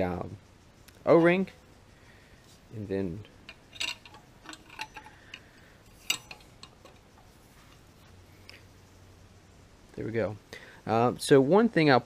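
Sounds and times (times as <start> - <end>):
metal clicks and knocks: 3.5 - 7.8.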